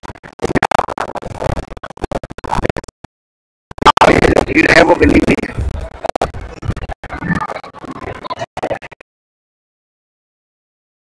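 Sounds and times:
rapid crackling clicks: 0.0s - 3.1s, 3.7s - 9.0s
voice fragments: 3.7s - 9.0s.

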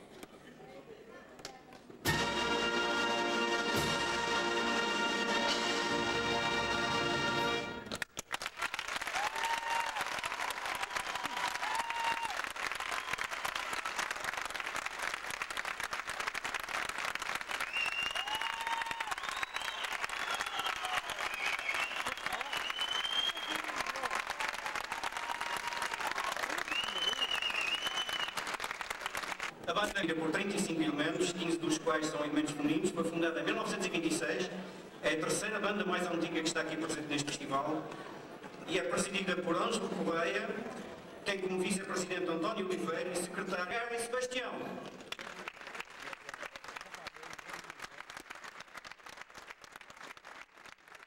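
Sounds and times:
audience applauding: 7.8s - 29.6s, 44.8s - 51.0s
cheers and whistles: 9.1s - 10.2s, 10.8s - 13.5s, 17.6s - 28.5s.

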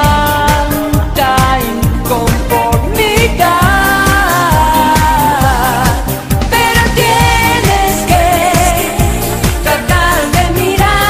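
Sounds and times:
drum beat: 0.0s - 11.0s
person singing: 0.0s - 11.0s.

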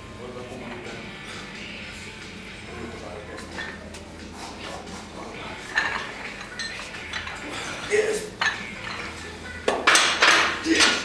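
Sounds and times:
gym background noise: 0.0s - 11.0s
dumbbells clinking: 8.3s - 11.0s.

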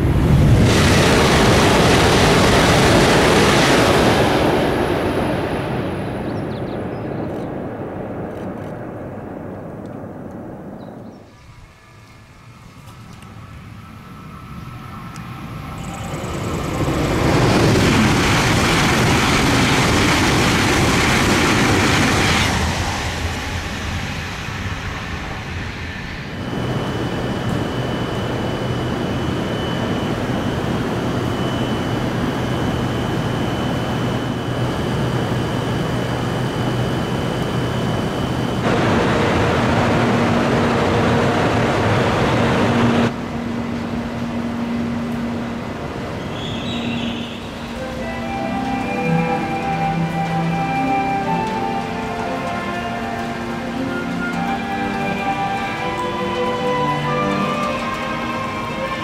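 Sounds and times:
high-speed train passing: 0.0s - 59.0s
train high whine and low hum: 0.0s - 59.0s.

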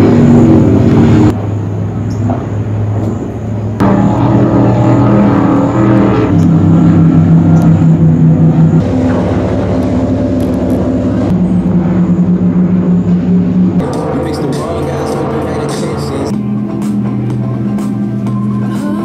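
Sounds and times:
powerboat engines at speed: 0.0s - 19.0s.

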